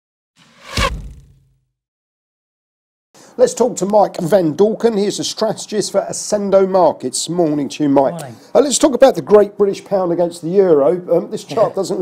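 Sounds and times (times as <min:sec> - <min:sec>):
whoosh: 0:00.4 - 0:01.6
deep low hit: 0:00.5 - 0:01.5.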